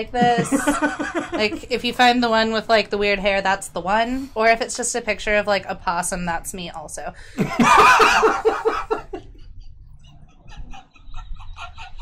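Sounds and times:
person cackling: 0.0 - 1.6, 7.4 - 9.2.

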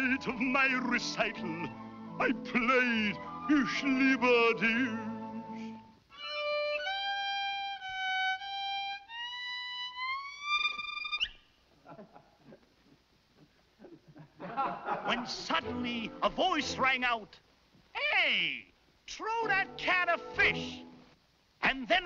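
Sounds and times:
solo violin playing: 6.1 - 11.3.

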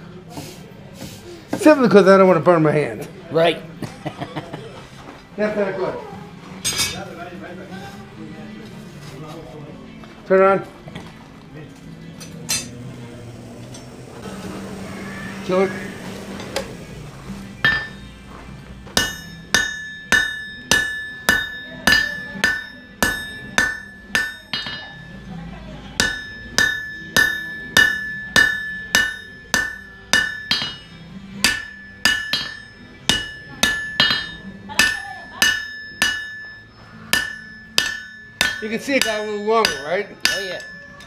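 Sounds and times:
hammer striking hot steel: 16.0 - 18.1, 18.8 - 25.2, 26.0 - 41.0
anvil ringing: 17.5 - 18.1, 19.0 - 25.3, 26.0 - 41.0.

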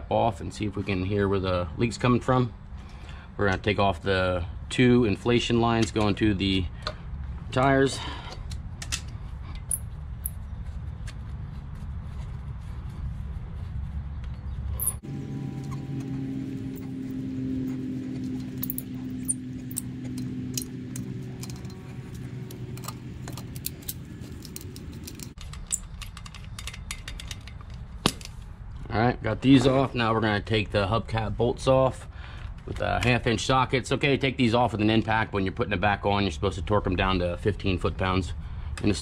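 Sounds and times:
steady low hum: 0.0 - 29.5
metallic clicks of hose fittings: 18.2 - 28.4.

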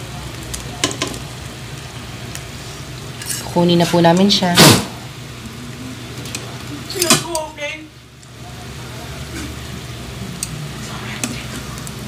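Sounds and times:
food sizzling in oil: 0.0 - 12.0.

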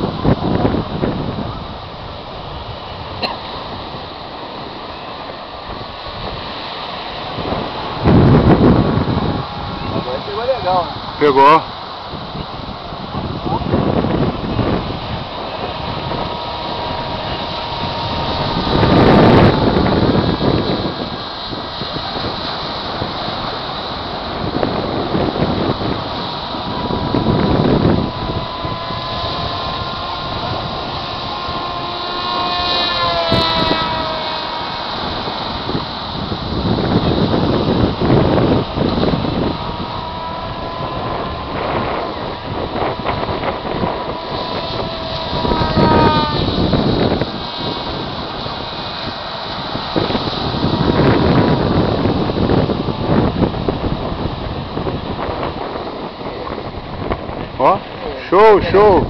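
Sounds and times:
model plane motor whine: 0.0 - 59.0
wind buffeting microphone: 0.0 - 59.0.

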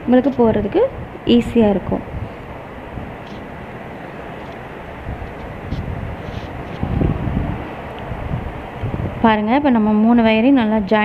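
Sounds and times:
steady background rumble: 0.0 - 11.0
rustle: 3.2 - 9.0.

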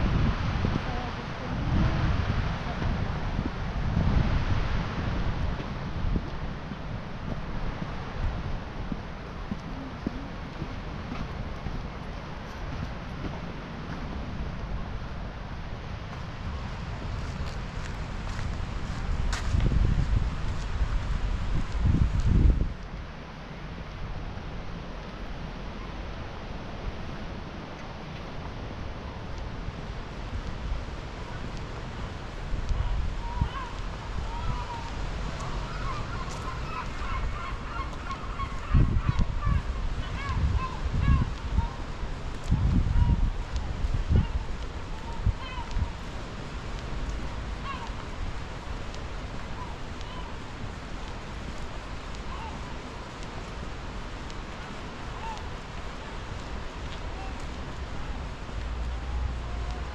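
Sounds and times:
wind buffeting microphone: 0.0 - 59.9
birds honking: 35.4 - 40.8.

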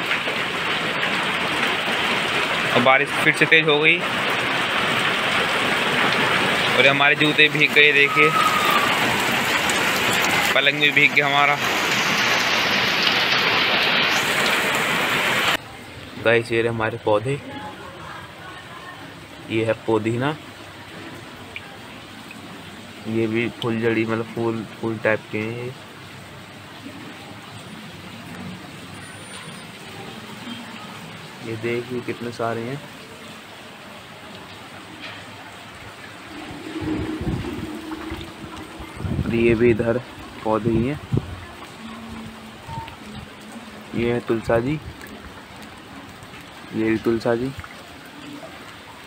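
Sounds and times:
heavy rain splashing into water: 0.0 - 49.0
microphone wind rumble: 36.1 - 41.6
steady low hum: 36.1 - 41.6.

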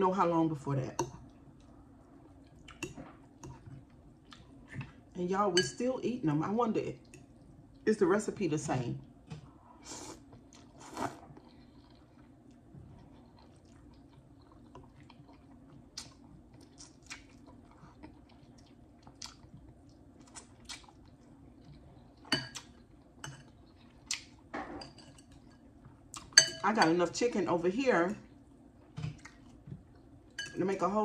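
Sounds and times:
chewing and mouth clicks: 2.4 - 4.6, 10.3 - 24.4, 29.1 - 30.1.

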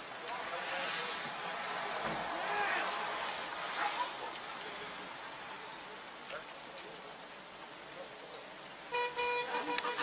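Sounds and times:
car horn honking: 8.9 - 10.0.

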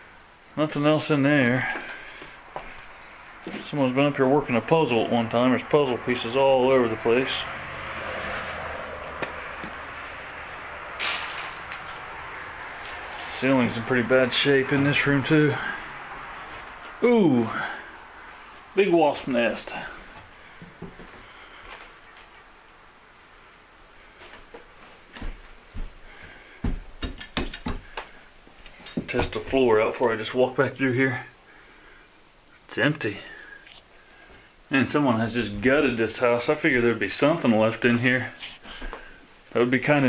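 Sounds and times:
footsteps on debris-strewn floor: 1.8 - 3.8, 24.2 - 27.0
feet thumping on wooden floor: 25.1 - 28.0.

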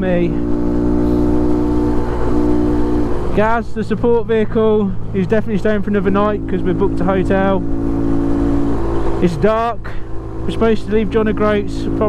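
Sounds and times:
motorcycle engine droning: 0.0 - 12.0.

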